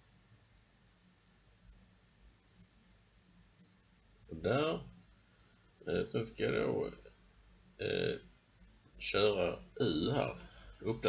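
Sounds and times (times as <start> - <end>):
faint clicks: 3.5 - 3.8.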